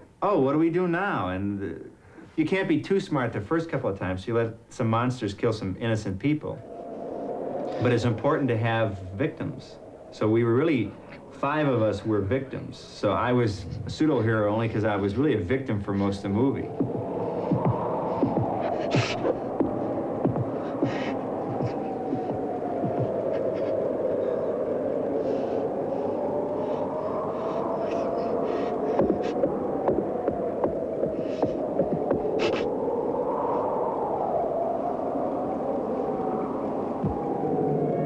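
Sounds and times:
eerie wavering drone: 6.2 - 38.0
low throbbing: 6.6 - 32.7.

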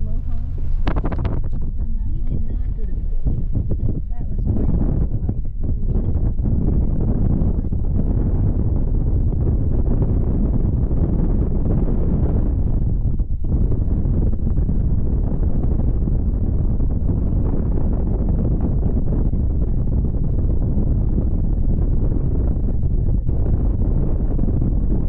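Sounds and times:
wind blowing across microphone: 0.0 - 25.0.

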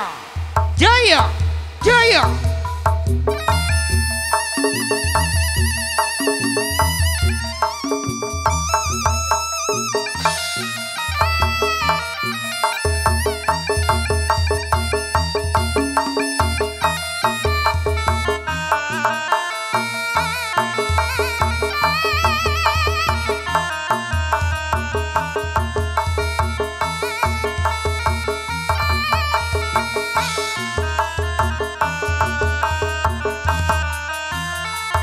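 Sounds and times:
drums: 0.0 - 35.0
shrill reed shawm melody: 0.0 - 35.0.

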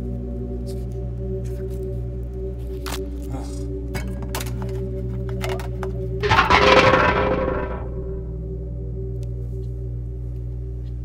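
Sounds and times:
loud crash: 6.2 - 8.2
low droning score: 6.2 - 8.4.

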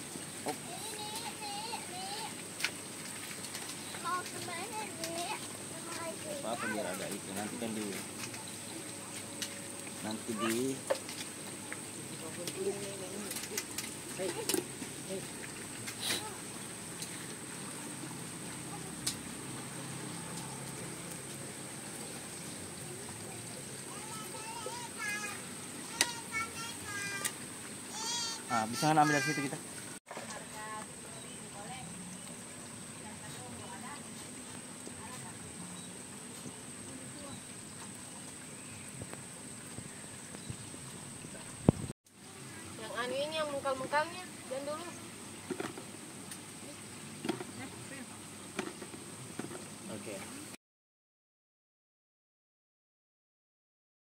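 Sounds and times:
background hiss: 0.0 - 50.6.

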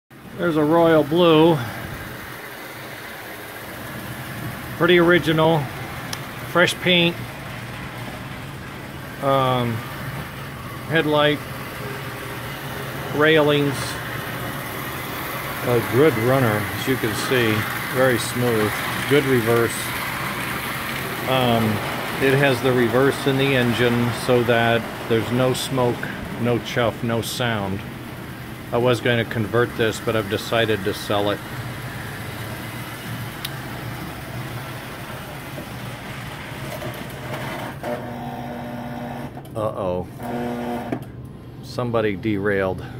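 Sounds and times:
wheels on rails: 0.2 - 37.9
toy train running on track: 0.6 - 27.7, 28.7 - 37.8
toy train motor hum: 9.1 - 25.7.

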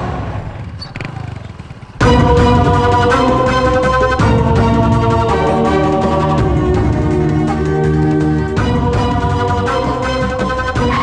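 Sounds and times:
motorcycle engine running: 0.1 - 11.0.

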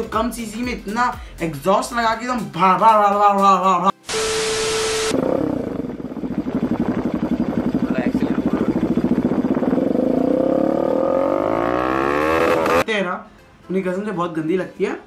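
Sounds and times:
motorcycle engine idling and revving: 5.1 - 12.9.

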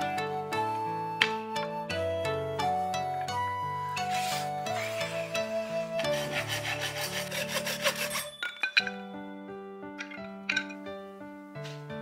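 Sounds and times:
hand saw cutting wood: 4.0 - 8.4.

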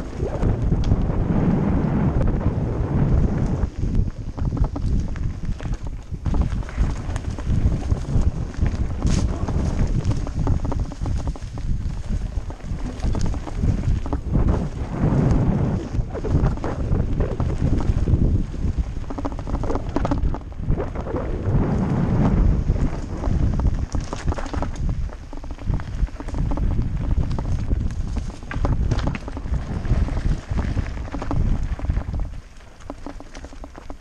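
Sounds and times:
bike rattling over bumps: 0.0 - 34.0
tyres on loose ground: 0.0 - 34.0
wind buffeting microphone: 0.0 - 34.0.

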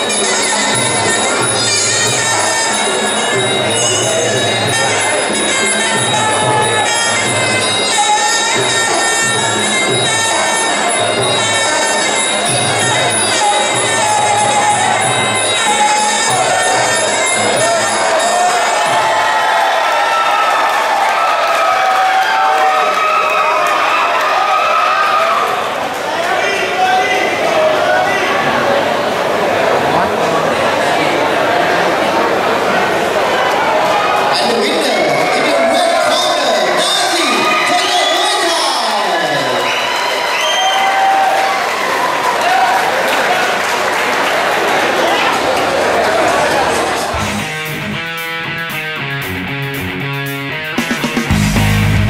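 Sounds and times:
crowd shouting and cheering: 0.0 - 52.0.

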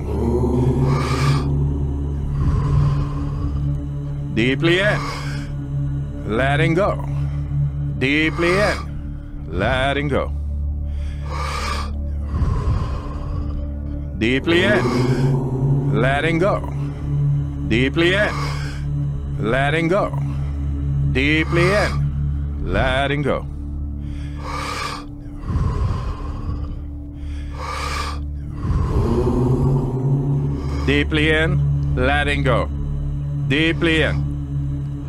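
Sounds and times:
person breathing deeply: 0.0 - 9.5, 10.3 - 19.4, 20.0 - 22.7, 23.4 - 32.0
low music drone: 0.0 - 35.0.

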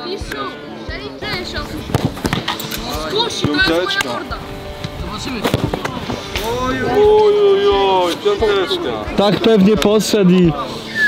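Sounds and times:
people talking: 0.0 - 11.0
footballs being struck: 1.2 - 6.5.

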